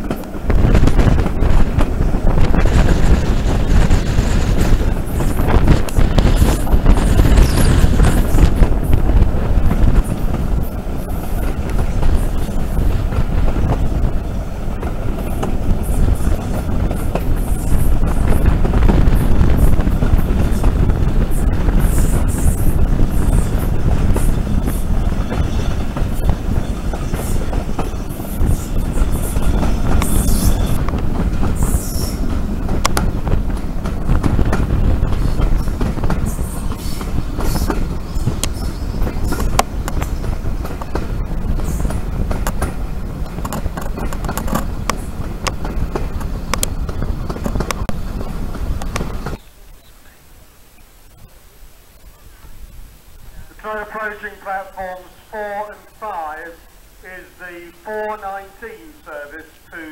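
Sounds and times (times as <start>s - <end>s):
train wheels rumbling on rails: 0.0s - 49.8s.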